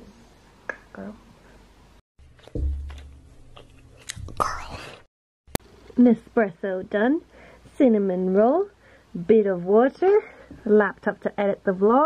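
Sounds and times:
girl whispering: 0:04.3 - 0:05.1.

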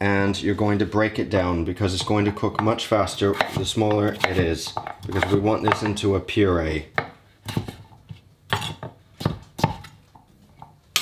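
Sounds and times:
knife chopping on cutting board: 0:02.0 - 0:06.0, 0:08.5 - 0:10.0.

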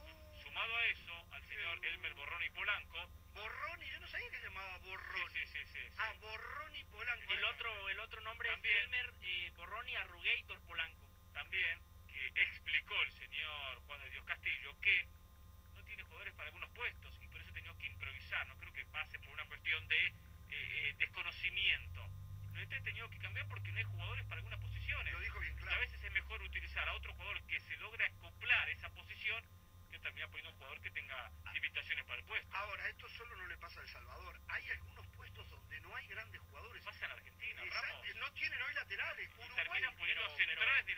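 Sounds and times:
man speaking over telephone line: 0:00.0 - 0:15.1, 0:15.8 - 0:40.9
recorded interview speech: 0:00.0 - 0:40.9
steady low hum: 0:00.0 - 0:40.9.

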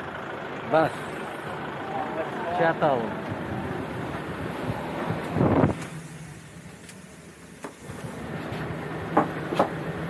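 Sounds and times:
bus engine idling: 0:00.0 - 0:10.0
loud rumble on microphone: 0:03.1 - 0:05.9.

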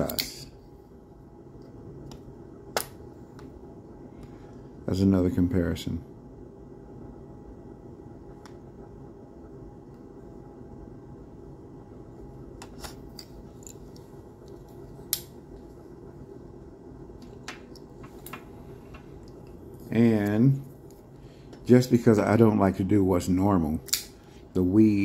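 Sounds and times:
faint room hum: 0:00.0 - 0:25.0.

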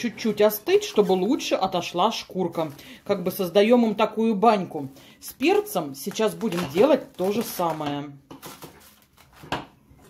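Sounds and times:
plastic cling film crinkling: 0:00.0 - 0:09.7.

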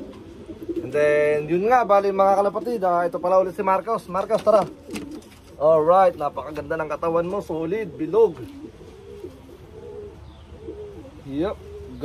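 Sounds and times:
pigeons cooing softly: 0:00.0 - 0:12.0.

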